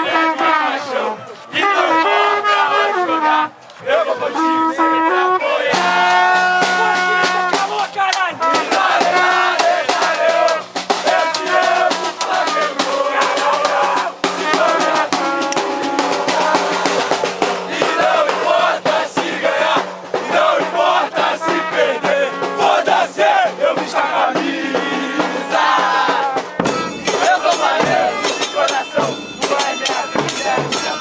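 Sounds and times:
football supporters chanting: 0.0 - 31.0
bass drum beating: 8.5 - 28.3.

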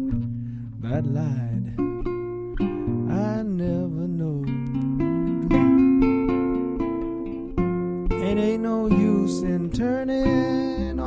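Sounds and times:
person singing: 0.0 - 2.0, 3.1 - 5.6, 8.1 - 11.0
acoustic guitar picked: 0.0 - 11.0.

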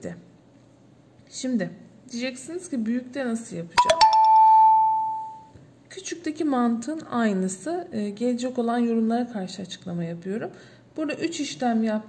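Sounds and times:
two-note ding-dong chime: 3.8 - 5.5.

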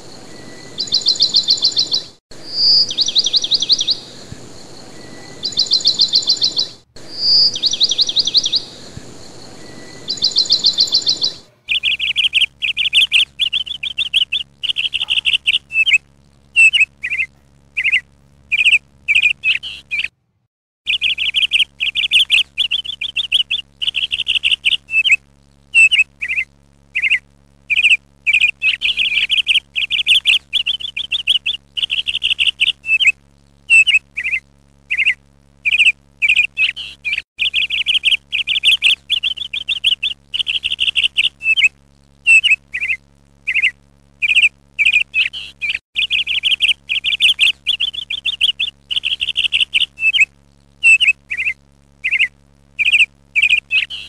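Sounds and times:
birds chirping and trilling: 0.0 - 20.1, 20.9 - 25.2, 25.8 - 54.0.

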